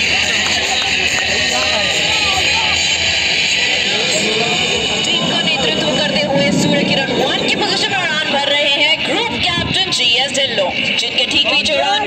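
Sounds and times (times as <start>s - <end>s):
crowd talking: 0.0s - 12.0s
steady rushing noise: 0.0s - 12.0s.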